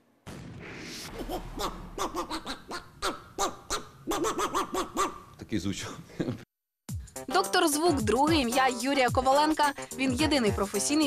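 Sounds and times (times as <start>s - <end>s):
man imitating hooting animal call: 2.0s - 5.4s.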